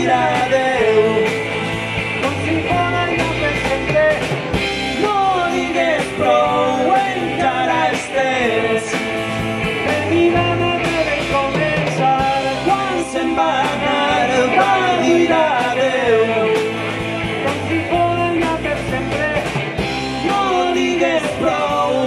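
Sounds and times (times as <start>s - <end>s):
bass guitar: 0.0s - 22.0s
drum kit: 0.0s - 22.0s
electric guitars: 0.0s - 22.0s.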